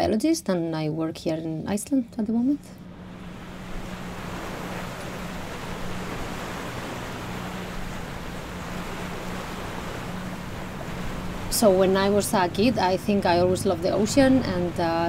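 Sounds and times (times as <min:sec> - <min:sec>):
wind: 0:00.0 - 0:15.0
low engine hum: 0:02.4 - 0:15.0
sea water rushing: 0:02.8 - 0:15.0.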